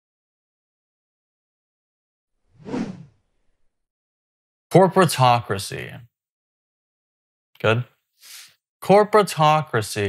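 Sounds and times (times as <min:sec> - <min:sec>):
whoosh transition effect: 0:02.5 - 0:03.1.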